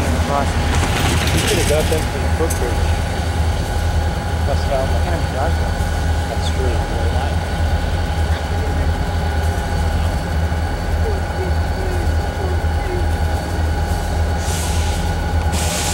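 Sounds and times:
car engine idling: 0:00.0 - 0:15.9.

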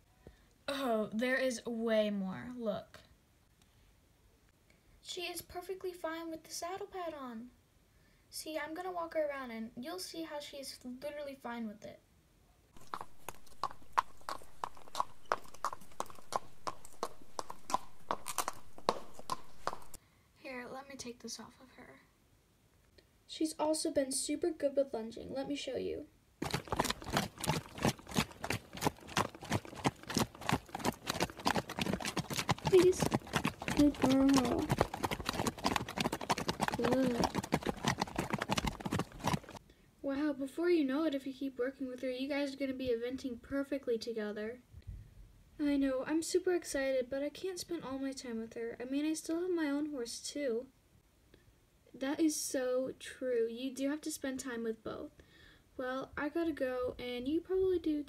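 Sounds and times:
horse hooves clip-clop: 0:12.8 - 0:20.0, 0:26.4 - 0:39.6.

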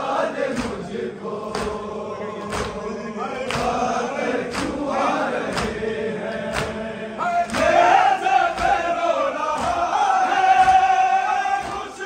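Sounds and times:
crowd of men chanting: 0:00.0 - 0:12.0
rhythmic chest-beating: 0:00.0 - 0:12.0.

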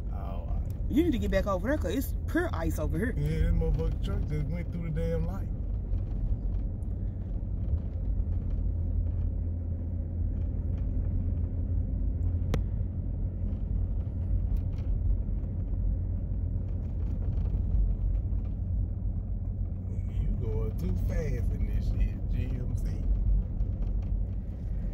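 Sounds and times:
car rumbling on snowy road: 0:00.0 - 0:24.9.

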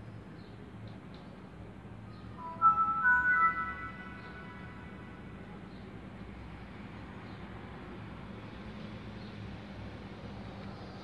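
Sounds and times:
laptop startup chime: 0:02.4 - 0:05.6.

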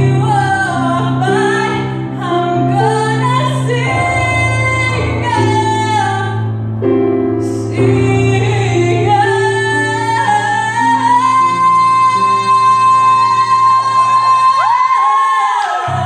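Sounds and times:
woman singing into microphone: 0:00.0 - 0:16.0.

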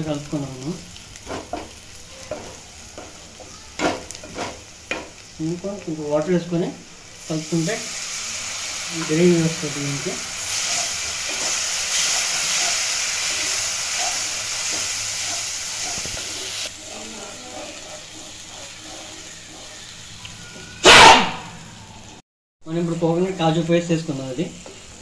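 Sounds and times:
gravy sizzling in a frying pan: 0:00.0 - 0:20.8.

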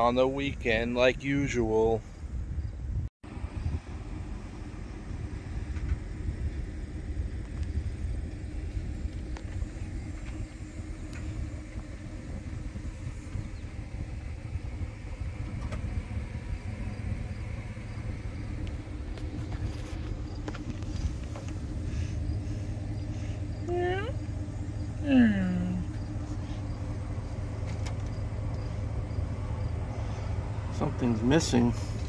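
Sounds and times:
vehicle engine idling: 0:00.0 - 0:32.0.

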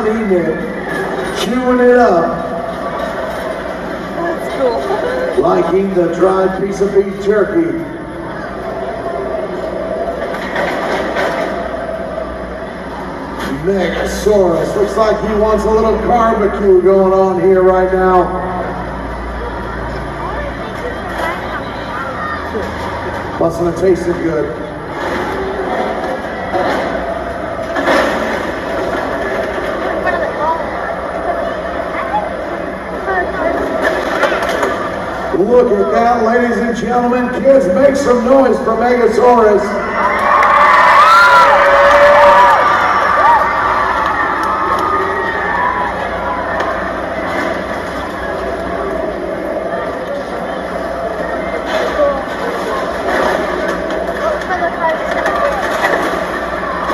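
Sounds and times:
crowd voices: 0:00.0 - 0:56.9
steady mechanical drone: 0:00.0 - 0:56.9.

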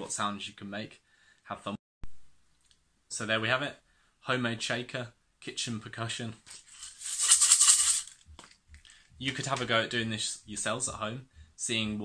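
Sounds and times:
shakers rattling with grains: 0:06.5 - 0:08.6.

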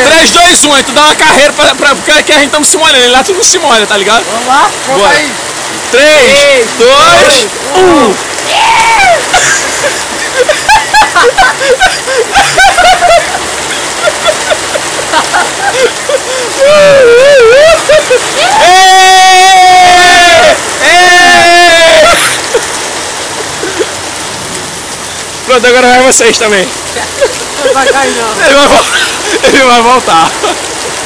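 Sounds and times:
heavy rain hissing: 0:00.0 - 0:31.0
running water: 0:00.0 - 0:31.0
long loud yells: 0:07.0 - 0:09.4, 0:16.5 - 0:22.6
group of people shouting: 0:18.4 - 0:22.2.

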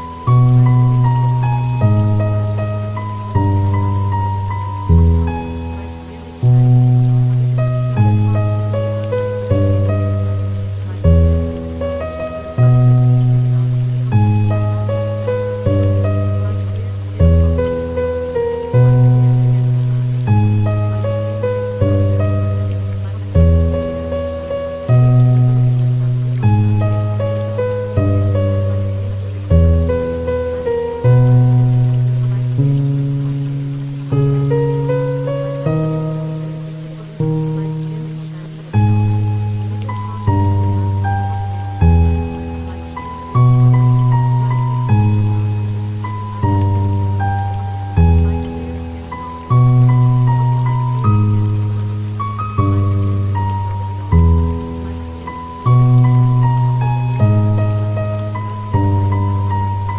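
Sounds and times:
rain patter: 0:00.0 - 0:59.9
slow instrumental music: 0:00.0 - 0:59.9.

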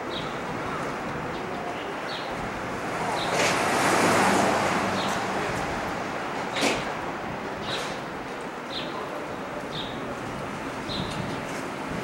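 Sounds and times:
city street traffic: 0:00.0 - 0:12.0
car passing: 0:02.7 - 0:07.2.

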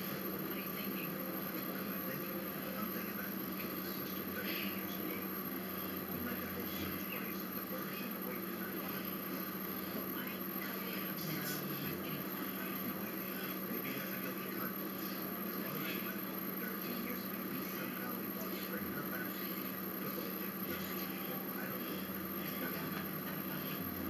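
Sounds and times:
electrical hum: 0:00.0 - 0:24.0.

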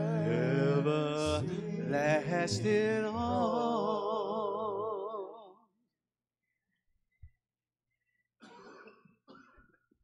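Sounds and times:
faint cough: 0:08.4 - 0:10.0.

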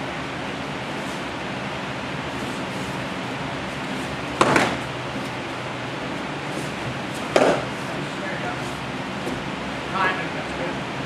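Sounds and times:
room noise hiss: 0:00.0 - 0:11.0
sparring sticks smacking: 0:03.8 - 0:05.4, 0:06.5 - 0:08.0.

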